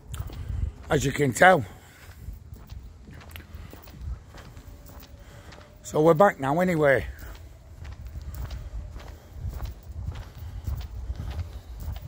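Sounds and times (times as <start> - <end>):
low microphone rumble: 0.0 - 5.8, 7.1 - 12.0
footsteps walking: 0.0 - 12.0.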